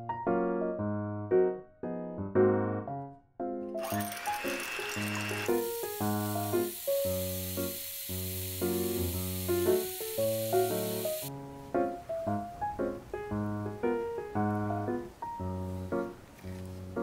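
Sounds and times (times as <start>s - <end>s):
light piano music: 0.0s - 17.0s
electric hand mixer whirring: 3.8s - 11.3s.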